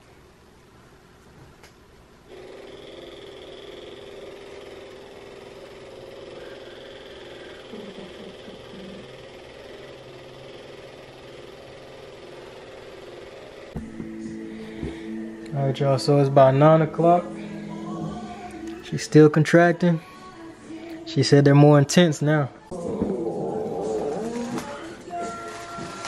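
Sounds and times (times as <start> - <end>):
massage gun motor hum: 2.3 - 19.4.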